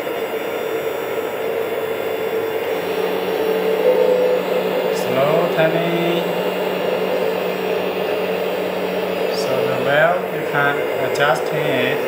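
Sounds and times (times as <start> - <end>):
hydraulic pump whining: 0.0 - 12.0.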